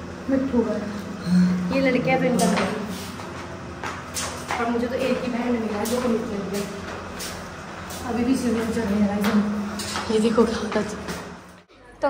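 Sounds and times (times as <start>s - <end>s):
person speaking: 0.3s - 3.2s, 4.5s - 7.0s
footsteps climbing stairs: 1.7s - 11.7s.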